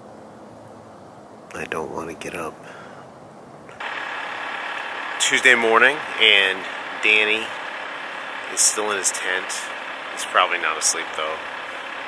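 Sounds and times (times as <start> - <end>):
car engine idling: 3.7 - 12.0.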